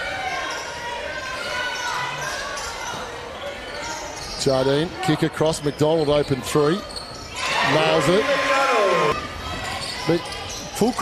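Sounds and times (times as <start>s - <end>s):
faint calls from players and spectators: 0.0s - 11.0s.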